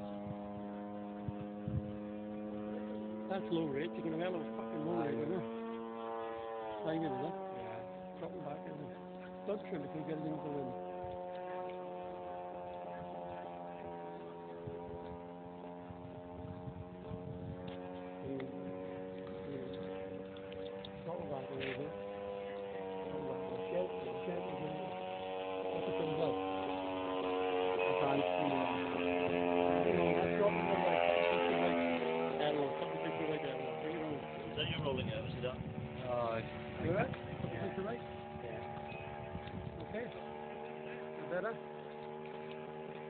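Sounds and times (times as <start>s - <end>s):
model plane engine droning: 0.0s - 43.0s.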